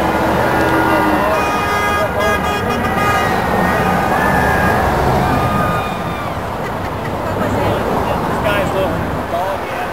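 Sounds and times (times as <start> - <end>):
cars driving past: 0.0 - 9.9
people's voices: 0.4 - 9.9.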